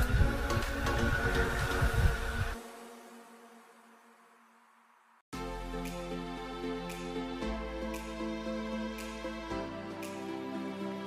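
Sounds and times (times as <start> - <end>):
wind on microphone: 0.0 - 2.6.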